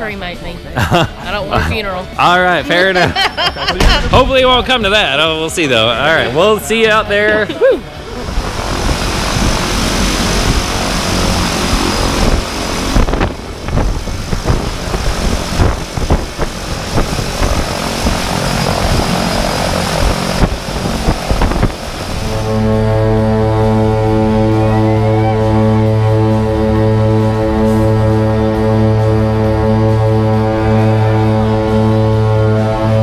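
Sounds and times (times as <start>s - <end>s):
music with sustained chords: 0.0s - 33.0s
propeller plane engines: 0.0s - 33.0s.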